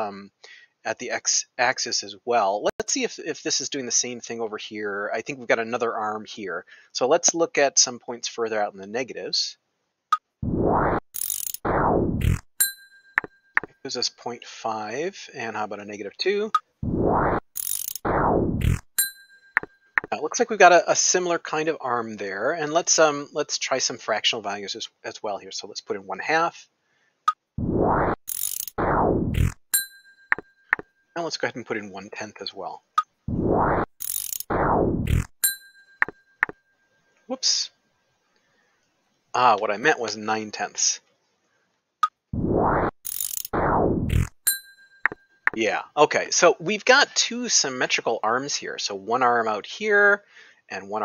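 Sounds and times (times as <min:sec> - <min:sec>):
mechanical whirr: 0:10.4 - 0:12.5, 0:16.8 - 0:18.9, 0:27.6 - 0:29.6, 0:33.3 - 0:35.3, 0:42.4 - 0:44.4
ratcheting clicks: 0:11.1 - 0:11.6, 0:17.5 - 0:18.9, 0:28.3 - 0:28.8, 0:34.0 - 0:34.5, 0:43.0 - 0:44.4
bell-like ding: 0:12.6 - 0:13.7, 0:19.0 - 0:20.1, 0:29.7 - 0:30.9, 0:35.4 - 0:36.6, 0:44.4 - 0:45.4.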